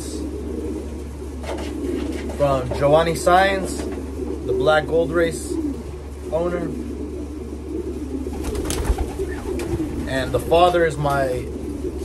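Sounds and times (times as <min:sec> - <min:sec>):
pigeons cooing: 0:00.0 - 0:12.0
steady low hum: 0:00.0 - 0:12.0.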